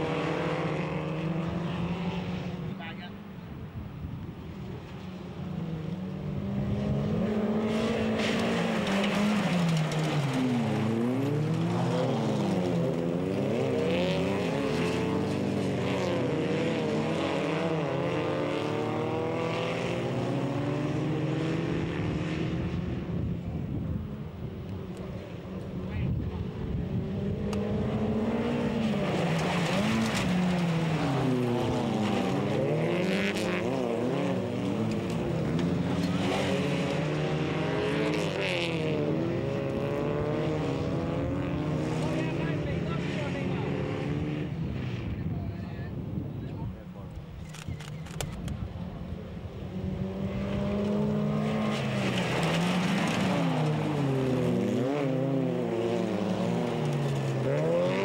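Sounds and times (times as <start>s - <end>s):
race car engines revving: 0.0s - 58.0s.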